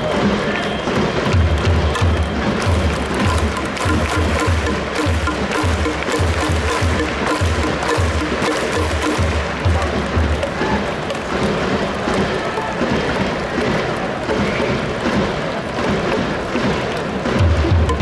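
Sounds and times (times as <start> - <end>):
crowd clapping along: 0.0 - 18.0
rhythmic cheer music: 0.0 - 18.0.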